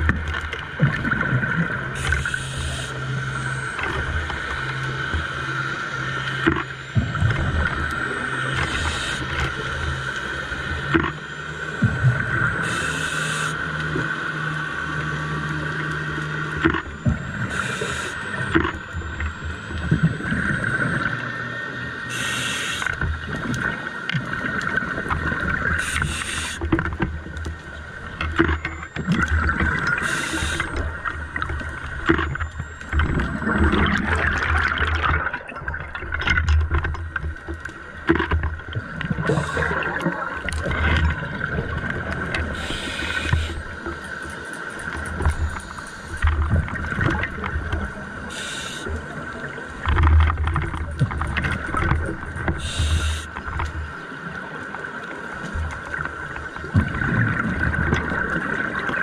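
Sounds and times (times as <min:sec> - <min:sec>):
steady underwater drone: 0:00.0 - 0:59.0
regulator inhalation hiss: 0:02.0 - 0:03.0, 0:12.6 - 0:13.6, 0:17.5 - 0:18.2, 0:22.1 - 0:22.9, 0:25.8 - 0:26.6, 0:30.0 - 0:30.7, 0:42.6 - 0:43.6, 0:48.3 - 0:48.9, 0:52.6 - 0:53.3
gurgling exhaled bubbles: 0:28.4 - 0:37.2, 0:38.1 - 0:43.6, 0:55.7 - 0:59.0.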